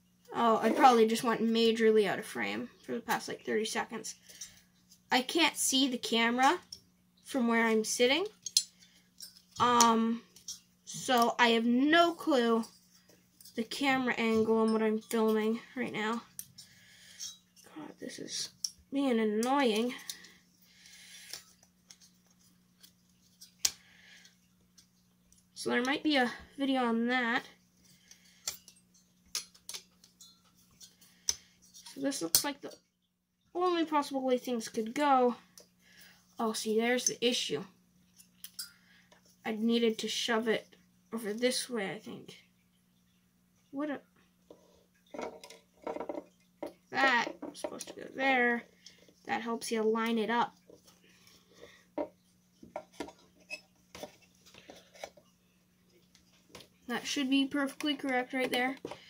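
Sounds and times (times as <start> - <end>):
plastic parts clicking and tapping: 28.1 - 30.5.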